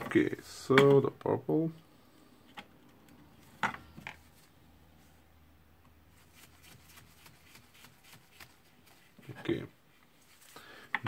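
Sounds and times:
faint rustling of wires: 0:01.8 - 0:11.0.

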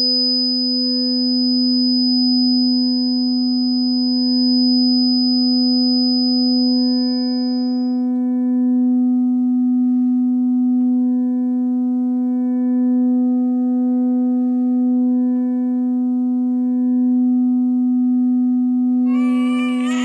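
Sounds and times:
low sustained musical drone: 0:06.5 - 0:20.0.

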